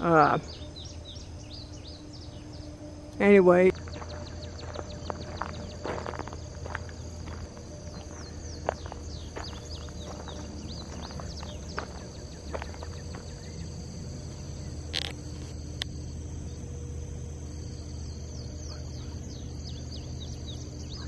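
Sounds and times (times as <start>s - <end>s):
insects trilling: 0.0s - 21.0s.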